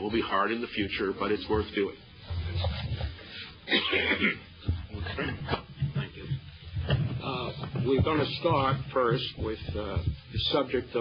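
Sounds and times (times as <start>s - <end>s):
muffled throat sounds: 2.4s - 8.7s
person coughing: 3.6s - 5.6s.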